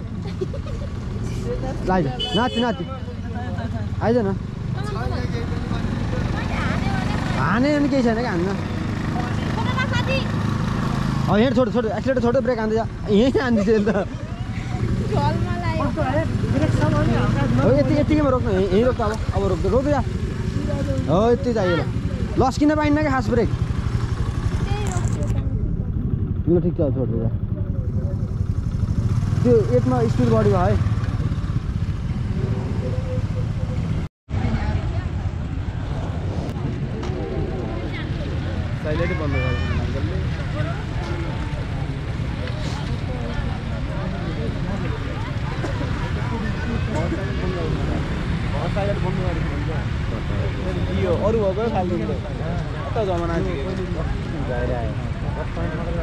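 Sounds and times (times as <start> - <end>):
scooter engine humming: 0.0 - 56.0
wind on microphone: 34.3 - 38.8.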